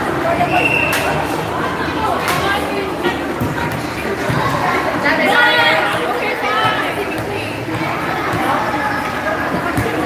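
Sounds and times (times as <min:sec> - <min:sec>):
people chattering and calling out: 0:00.0 - 0:10.0.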